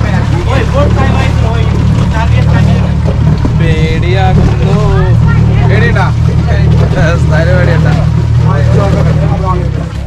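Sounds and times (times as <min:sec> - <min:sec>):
outboard motor running: 0:00.0 - 0:10.0.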